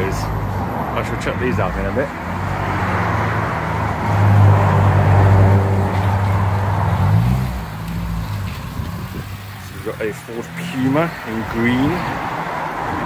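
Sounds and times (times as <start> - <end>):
car engine running low revs: 2.3 - 13.0.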